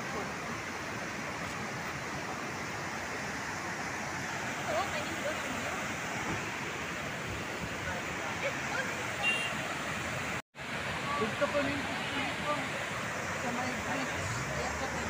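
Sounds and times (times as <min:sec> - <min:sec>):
waterfall and river rushing: 0:00.0 - 0:15.0.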